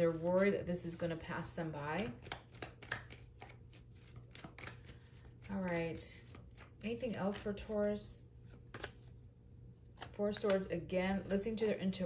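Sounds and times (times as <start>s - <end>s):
cards shuffling: 0.0s - 9.2s, 9.8s - 11.6s
card edges clicking: 2.0s - 7.7s, 8.6s - 9.0s.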